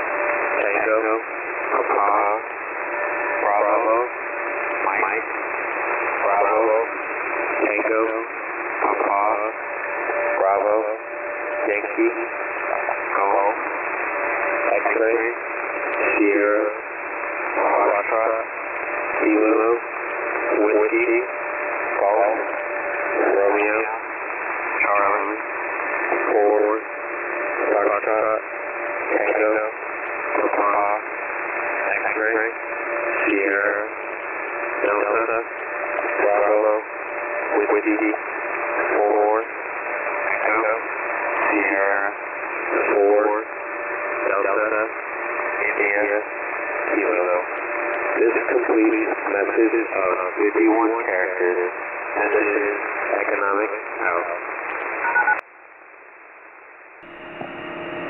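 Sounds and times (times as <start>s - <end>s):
radio static: 0.0s - 55.4s
voice over shortwave radio: 0.0s - 55.4s.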